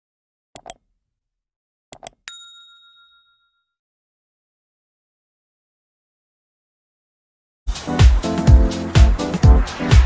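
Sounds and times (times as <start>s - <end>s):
notification bell ding: 2.3s - 3.8s.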